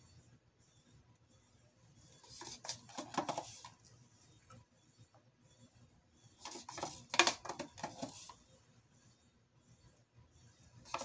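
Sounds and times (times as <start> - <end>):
stir stick scraping in paint cup: 2.0 - 5.6, 6.2 - 8.5, 10.8 - 11.0.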